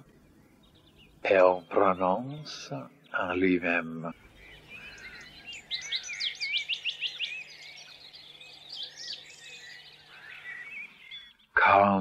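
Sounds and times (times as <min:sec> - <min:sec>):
songbirds singing and chirping: 0:00.0 - 0:12.0.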